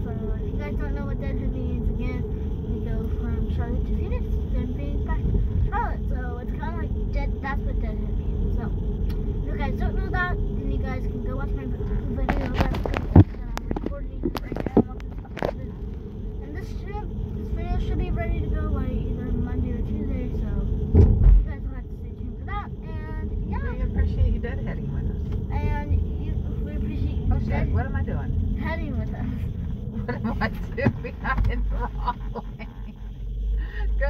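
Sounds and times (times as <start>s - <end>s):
car road rumble: 0.0s - 34.0s
voices: 0.0s - 34.0s
heavy thump: 20.9s - 21.5s.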